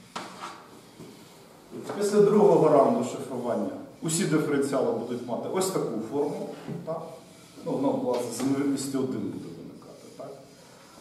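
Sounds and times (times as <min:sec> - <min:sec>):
chalk tapping on chalkboard: 0:00.1 - 0:01.2
man speaking: 0:01.8 - 0:10.5.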